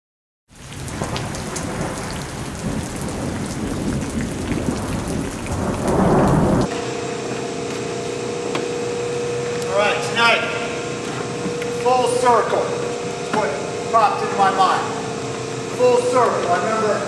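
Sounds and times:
rain hissing: 0.5s - 6.7s
ventilation hum: 0.5s - 17.0s
thunder rumble: 0.7s - 6.7s.

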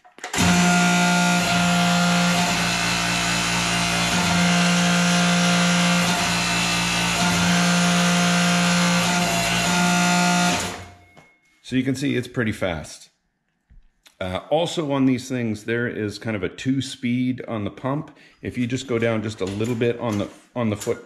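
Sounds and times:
hydraulic press motor humming: 0.2s - 11.0s.

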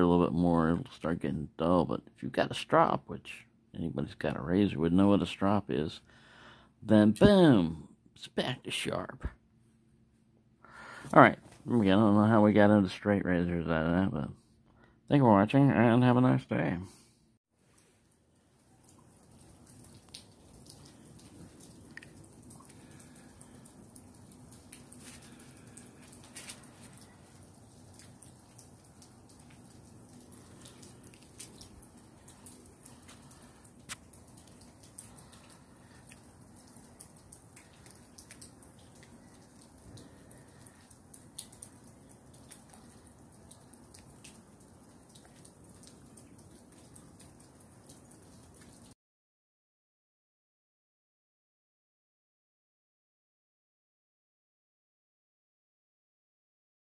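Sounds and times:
sleet ticking and dripping: 17.6s - 49.0s.

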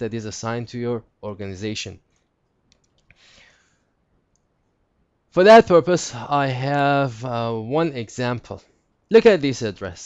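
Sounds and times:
faint computer mouse clicks: 2.1s - 3.2s.

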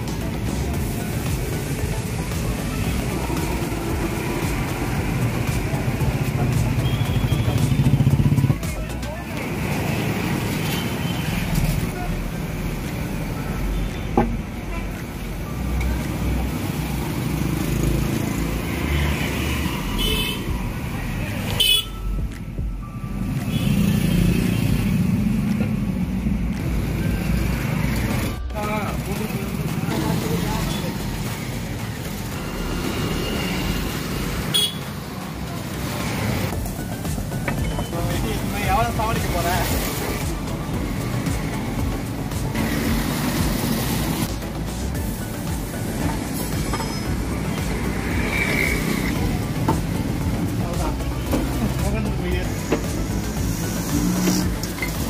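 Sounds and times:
motorcycles and cars passing: 0.0s - 55.0s
car horns tooting: 6.7s - 8.5s, 19.9s - 20.6s, 21.5s - 22.2s, 34.4s - 35.0s
people talking: 37.8s - 40.3s.

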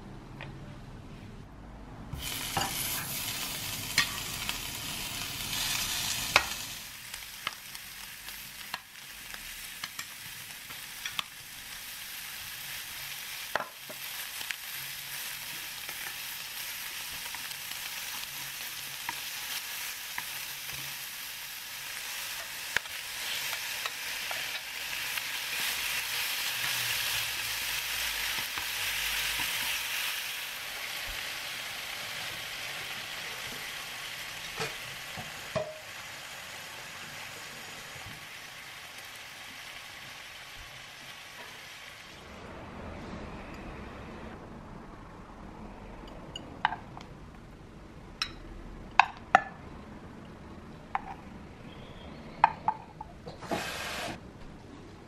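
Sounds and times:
pork sizzling in a pan: 2.2s - 42.2s.

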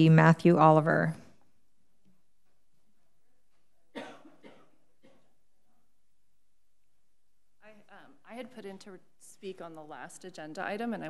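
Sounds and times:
woman coughing into microphone: 3.9s - 5.4s.

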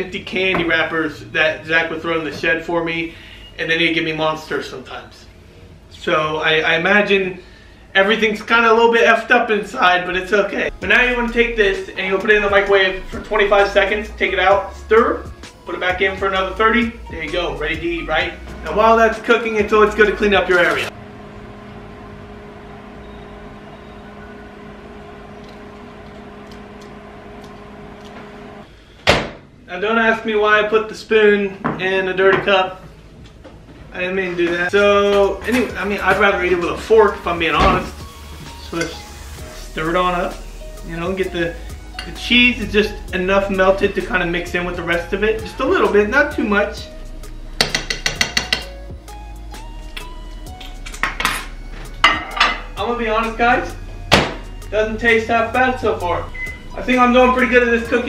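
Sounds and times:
microwave oven humming: 20.9s - 28.7s, 56.0s - 57.0s.

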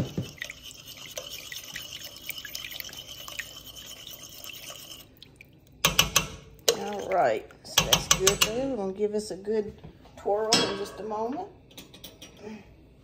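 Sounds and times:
watery drips and splashes: 0.0s - 7.6s
spoon swishing in broth: 0.2s - 5.8s.

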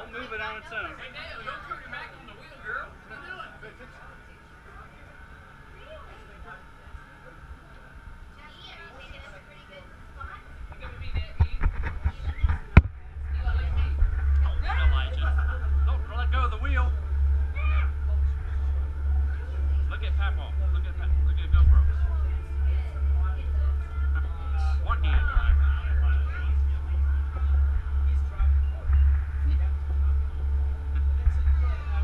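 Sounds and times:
low pulsing engine rumble: 0.0s - 32.0s
people talking and laughing: 0.0s - 32.0s.

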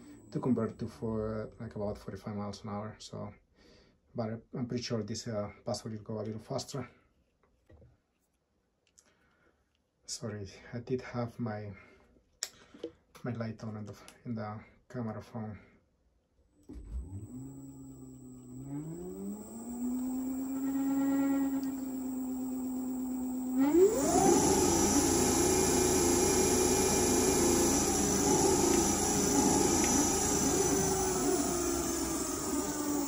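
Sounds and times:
electric motor whine: 16.7s - 33.0s.

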